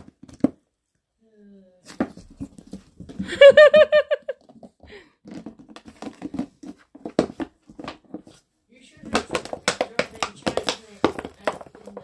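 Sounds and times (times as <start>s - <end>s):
scuffling with plastic bottle: 4.5s - 12.0s.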